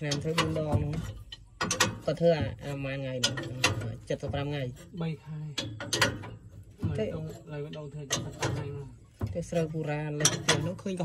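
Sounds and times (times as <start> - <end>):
metal creaking: 0.0 - 11.0
sharp metal clicks: 0.0 - 11.0.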